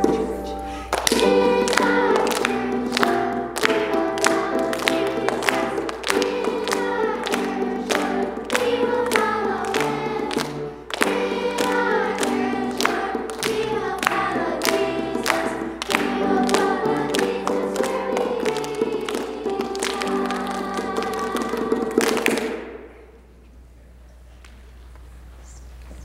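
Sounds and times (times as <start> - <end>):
children's choir singing: 0.0 - 23.0.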